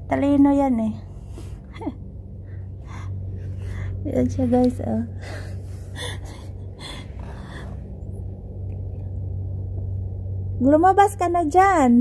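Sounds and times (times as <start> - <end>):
steady low hum: 0.0 - 12.0
woman laughing breathily: 5.2 - 7.8.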